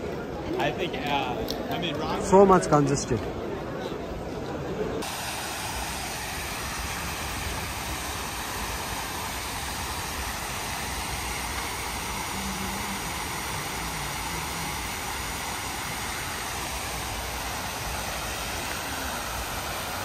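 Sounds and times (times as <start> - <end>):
fountain water splashing: 5.0 - 20.0.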